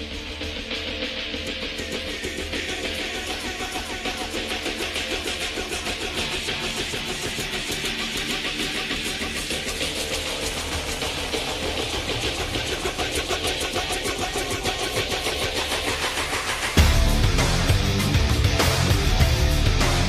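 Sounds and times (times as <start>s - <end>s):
rock music with electric guitar: 0.0s - 20.0s.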